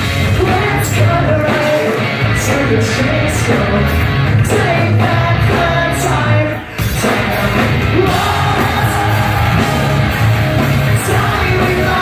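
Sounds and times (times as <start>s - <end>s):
punk rock band playing live: 0.0s - 12.0s
person singing: 0.3s - 12.0s.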